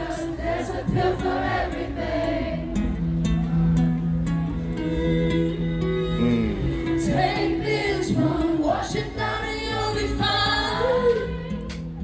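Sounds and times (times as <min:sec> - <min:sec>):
string quartet chords: 0:00.0 - 0:10.4
acoustic guitar: 0:00.0 - 0:12.0
person singing: 0:06.1 - 0:11.4.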